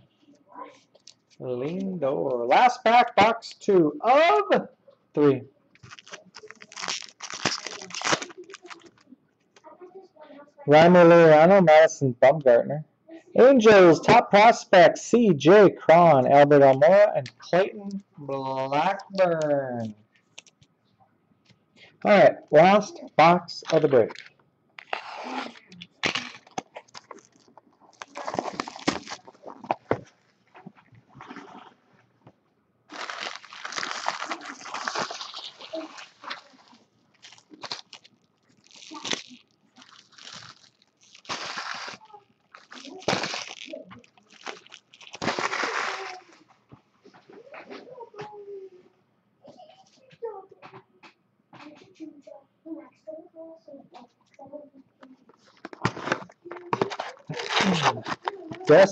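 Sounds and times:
plastic wrapping crinkling and tearing: 5.8s - 9.1s, 23.7s - 30.2s, 32.9s - 46.5s, 55.5s - 58.9s.

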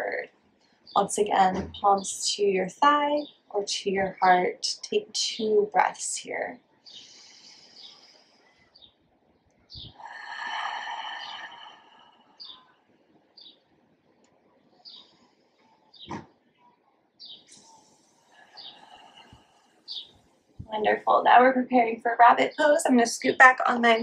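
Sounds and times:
deep breathing: 6.9s - 8.7s, 9.9s - 12.7s, 17.5s - 20.1s
bird chirps: 12.4s - 12.7s.

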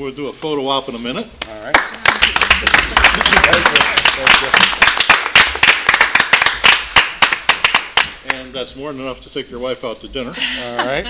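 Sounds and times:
people clapping: 1.4s - 8.6s.

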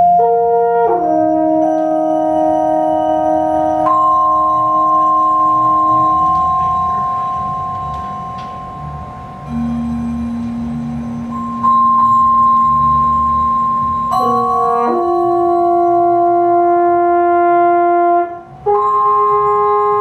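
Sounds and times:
long held notes: 0.0s - 20.0s
soft-mallet keyboard percussion: 1.6s - 16.6s, 18.6s - 20.0s.

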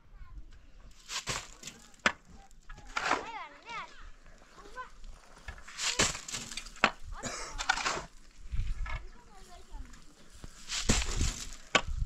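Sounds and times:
rough scraping bursts: 0.9s - 6.8s, 7.5s - 8.5s, 10.5s - 11.8s.

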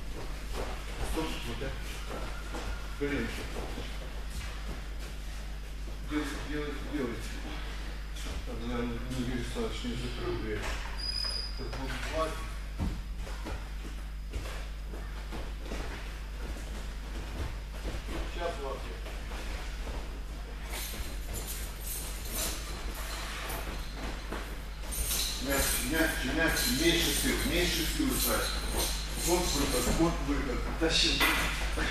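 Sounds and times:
steady low hum: 0.0s - 31.9s.

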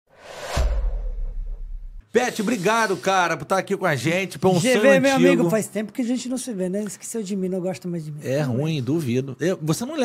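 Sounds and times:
rising whoosh: 0.1s - 2.0s.

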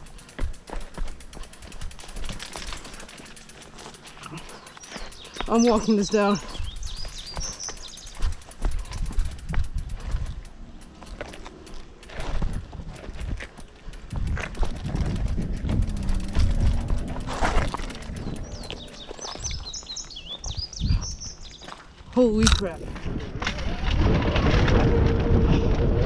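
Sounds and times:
birds chirping: 0.0s - 12.5s, 15.6s - 22.8s
footsteps on rocky trail: 0.0s - 23.4s
bike rattling over rock: 0.0s - 26.0s
low handling rumble on microphone: 6.6s - 21.4s.

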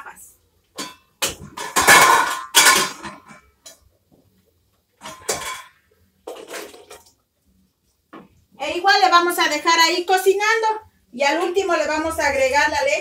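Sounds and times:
potatoes clattering into pot: 0.8s - 3.6s.

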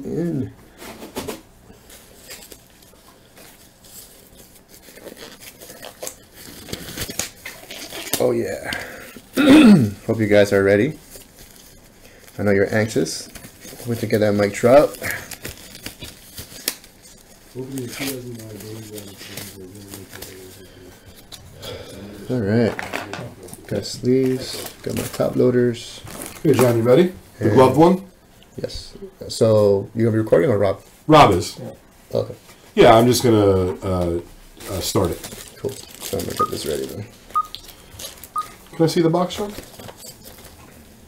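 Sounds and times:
rubber gloves rustling and stretching: 0.7s - 28.7s, 29.3s - 41.0s.

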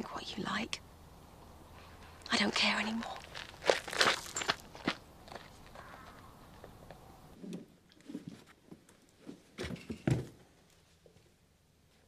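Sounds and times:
footsteps: 2.0s - 6.8s.

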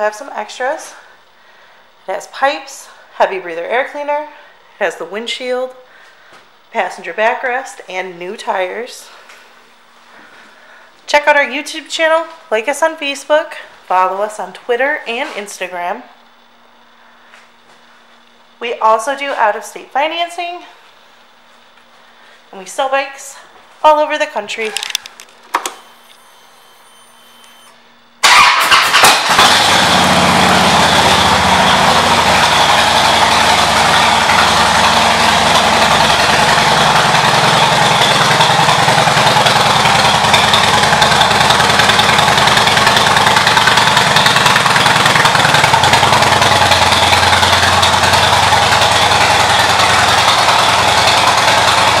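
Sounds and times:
motorcycle engine starting and idling: 24.5s - 52.0s.

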